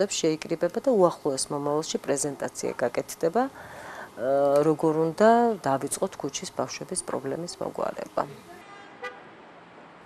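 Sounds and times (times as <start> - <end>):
woman speaking: 0.0 - 8.5
faint car horn toot: 8.5 - 9.3.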